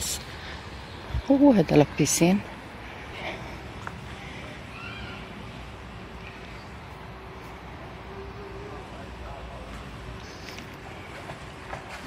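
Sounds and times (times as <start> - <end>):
outdoor background noise: 0.0 - 12.0
distant rising and falling call: 2.4 - 11.2.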